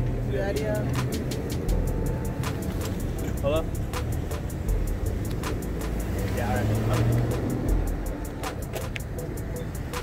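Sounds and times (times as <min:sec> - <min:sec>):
music playing: 0:00.0 - 0:10.0
vehicle engine hum: 0:00.0 - 0:10.0.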